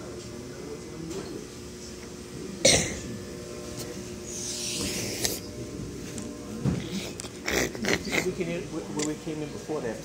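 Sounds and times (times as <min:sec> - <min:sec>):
steady background hum: 0:00.0 - 0:10.0
person coughing: 0:02.6 - 0:03.1.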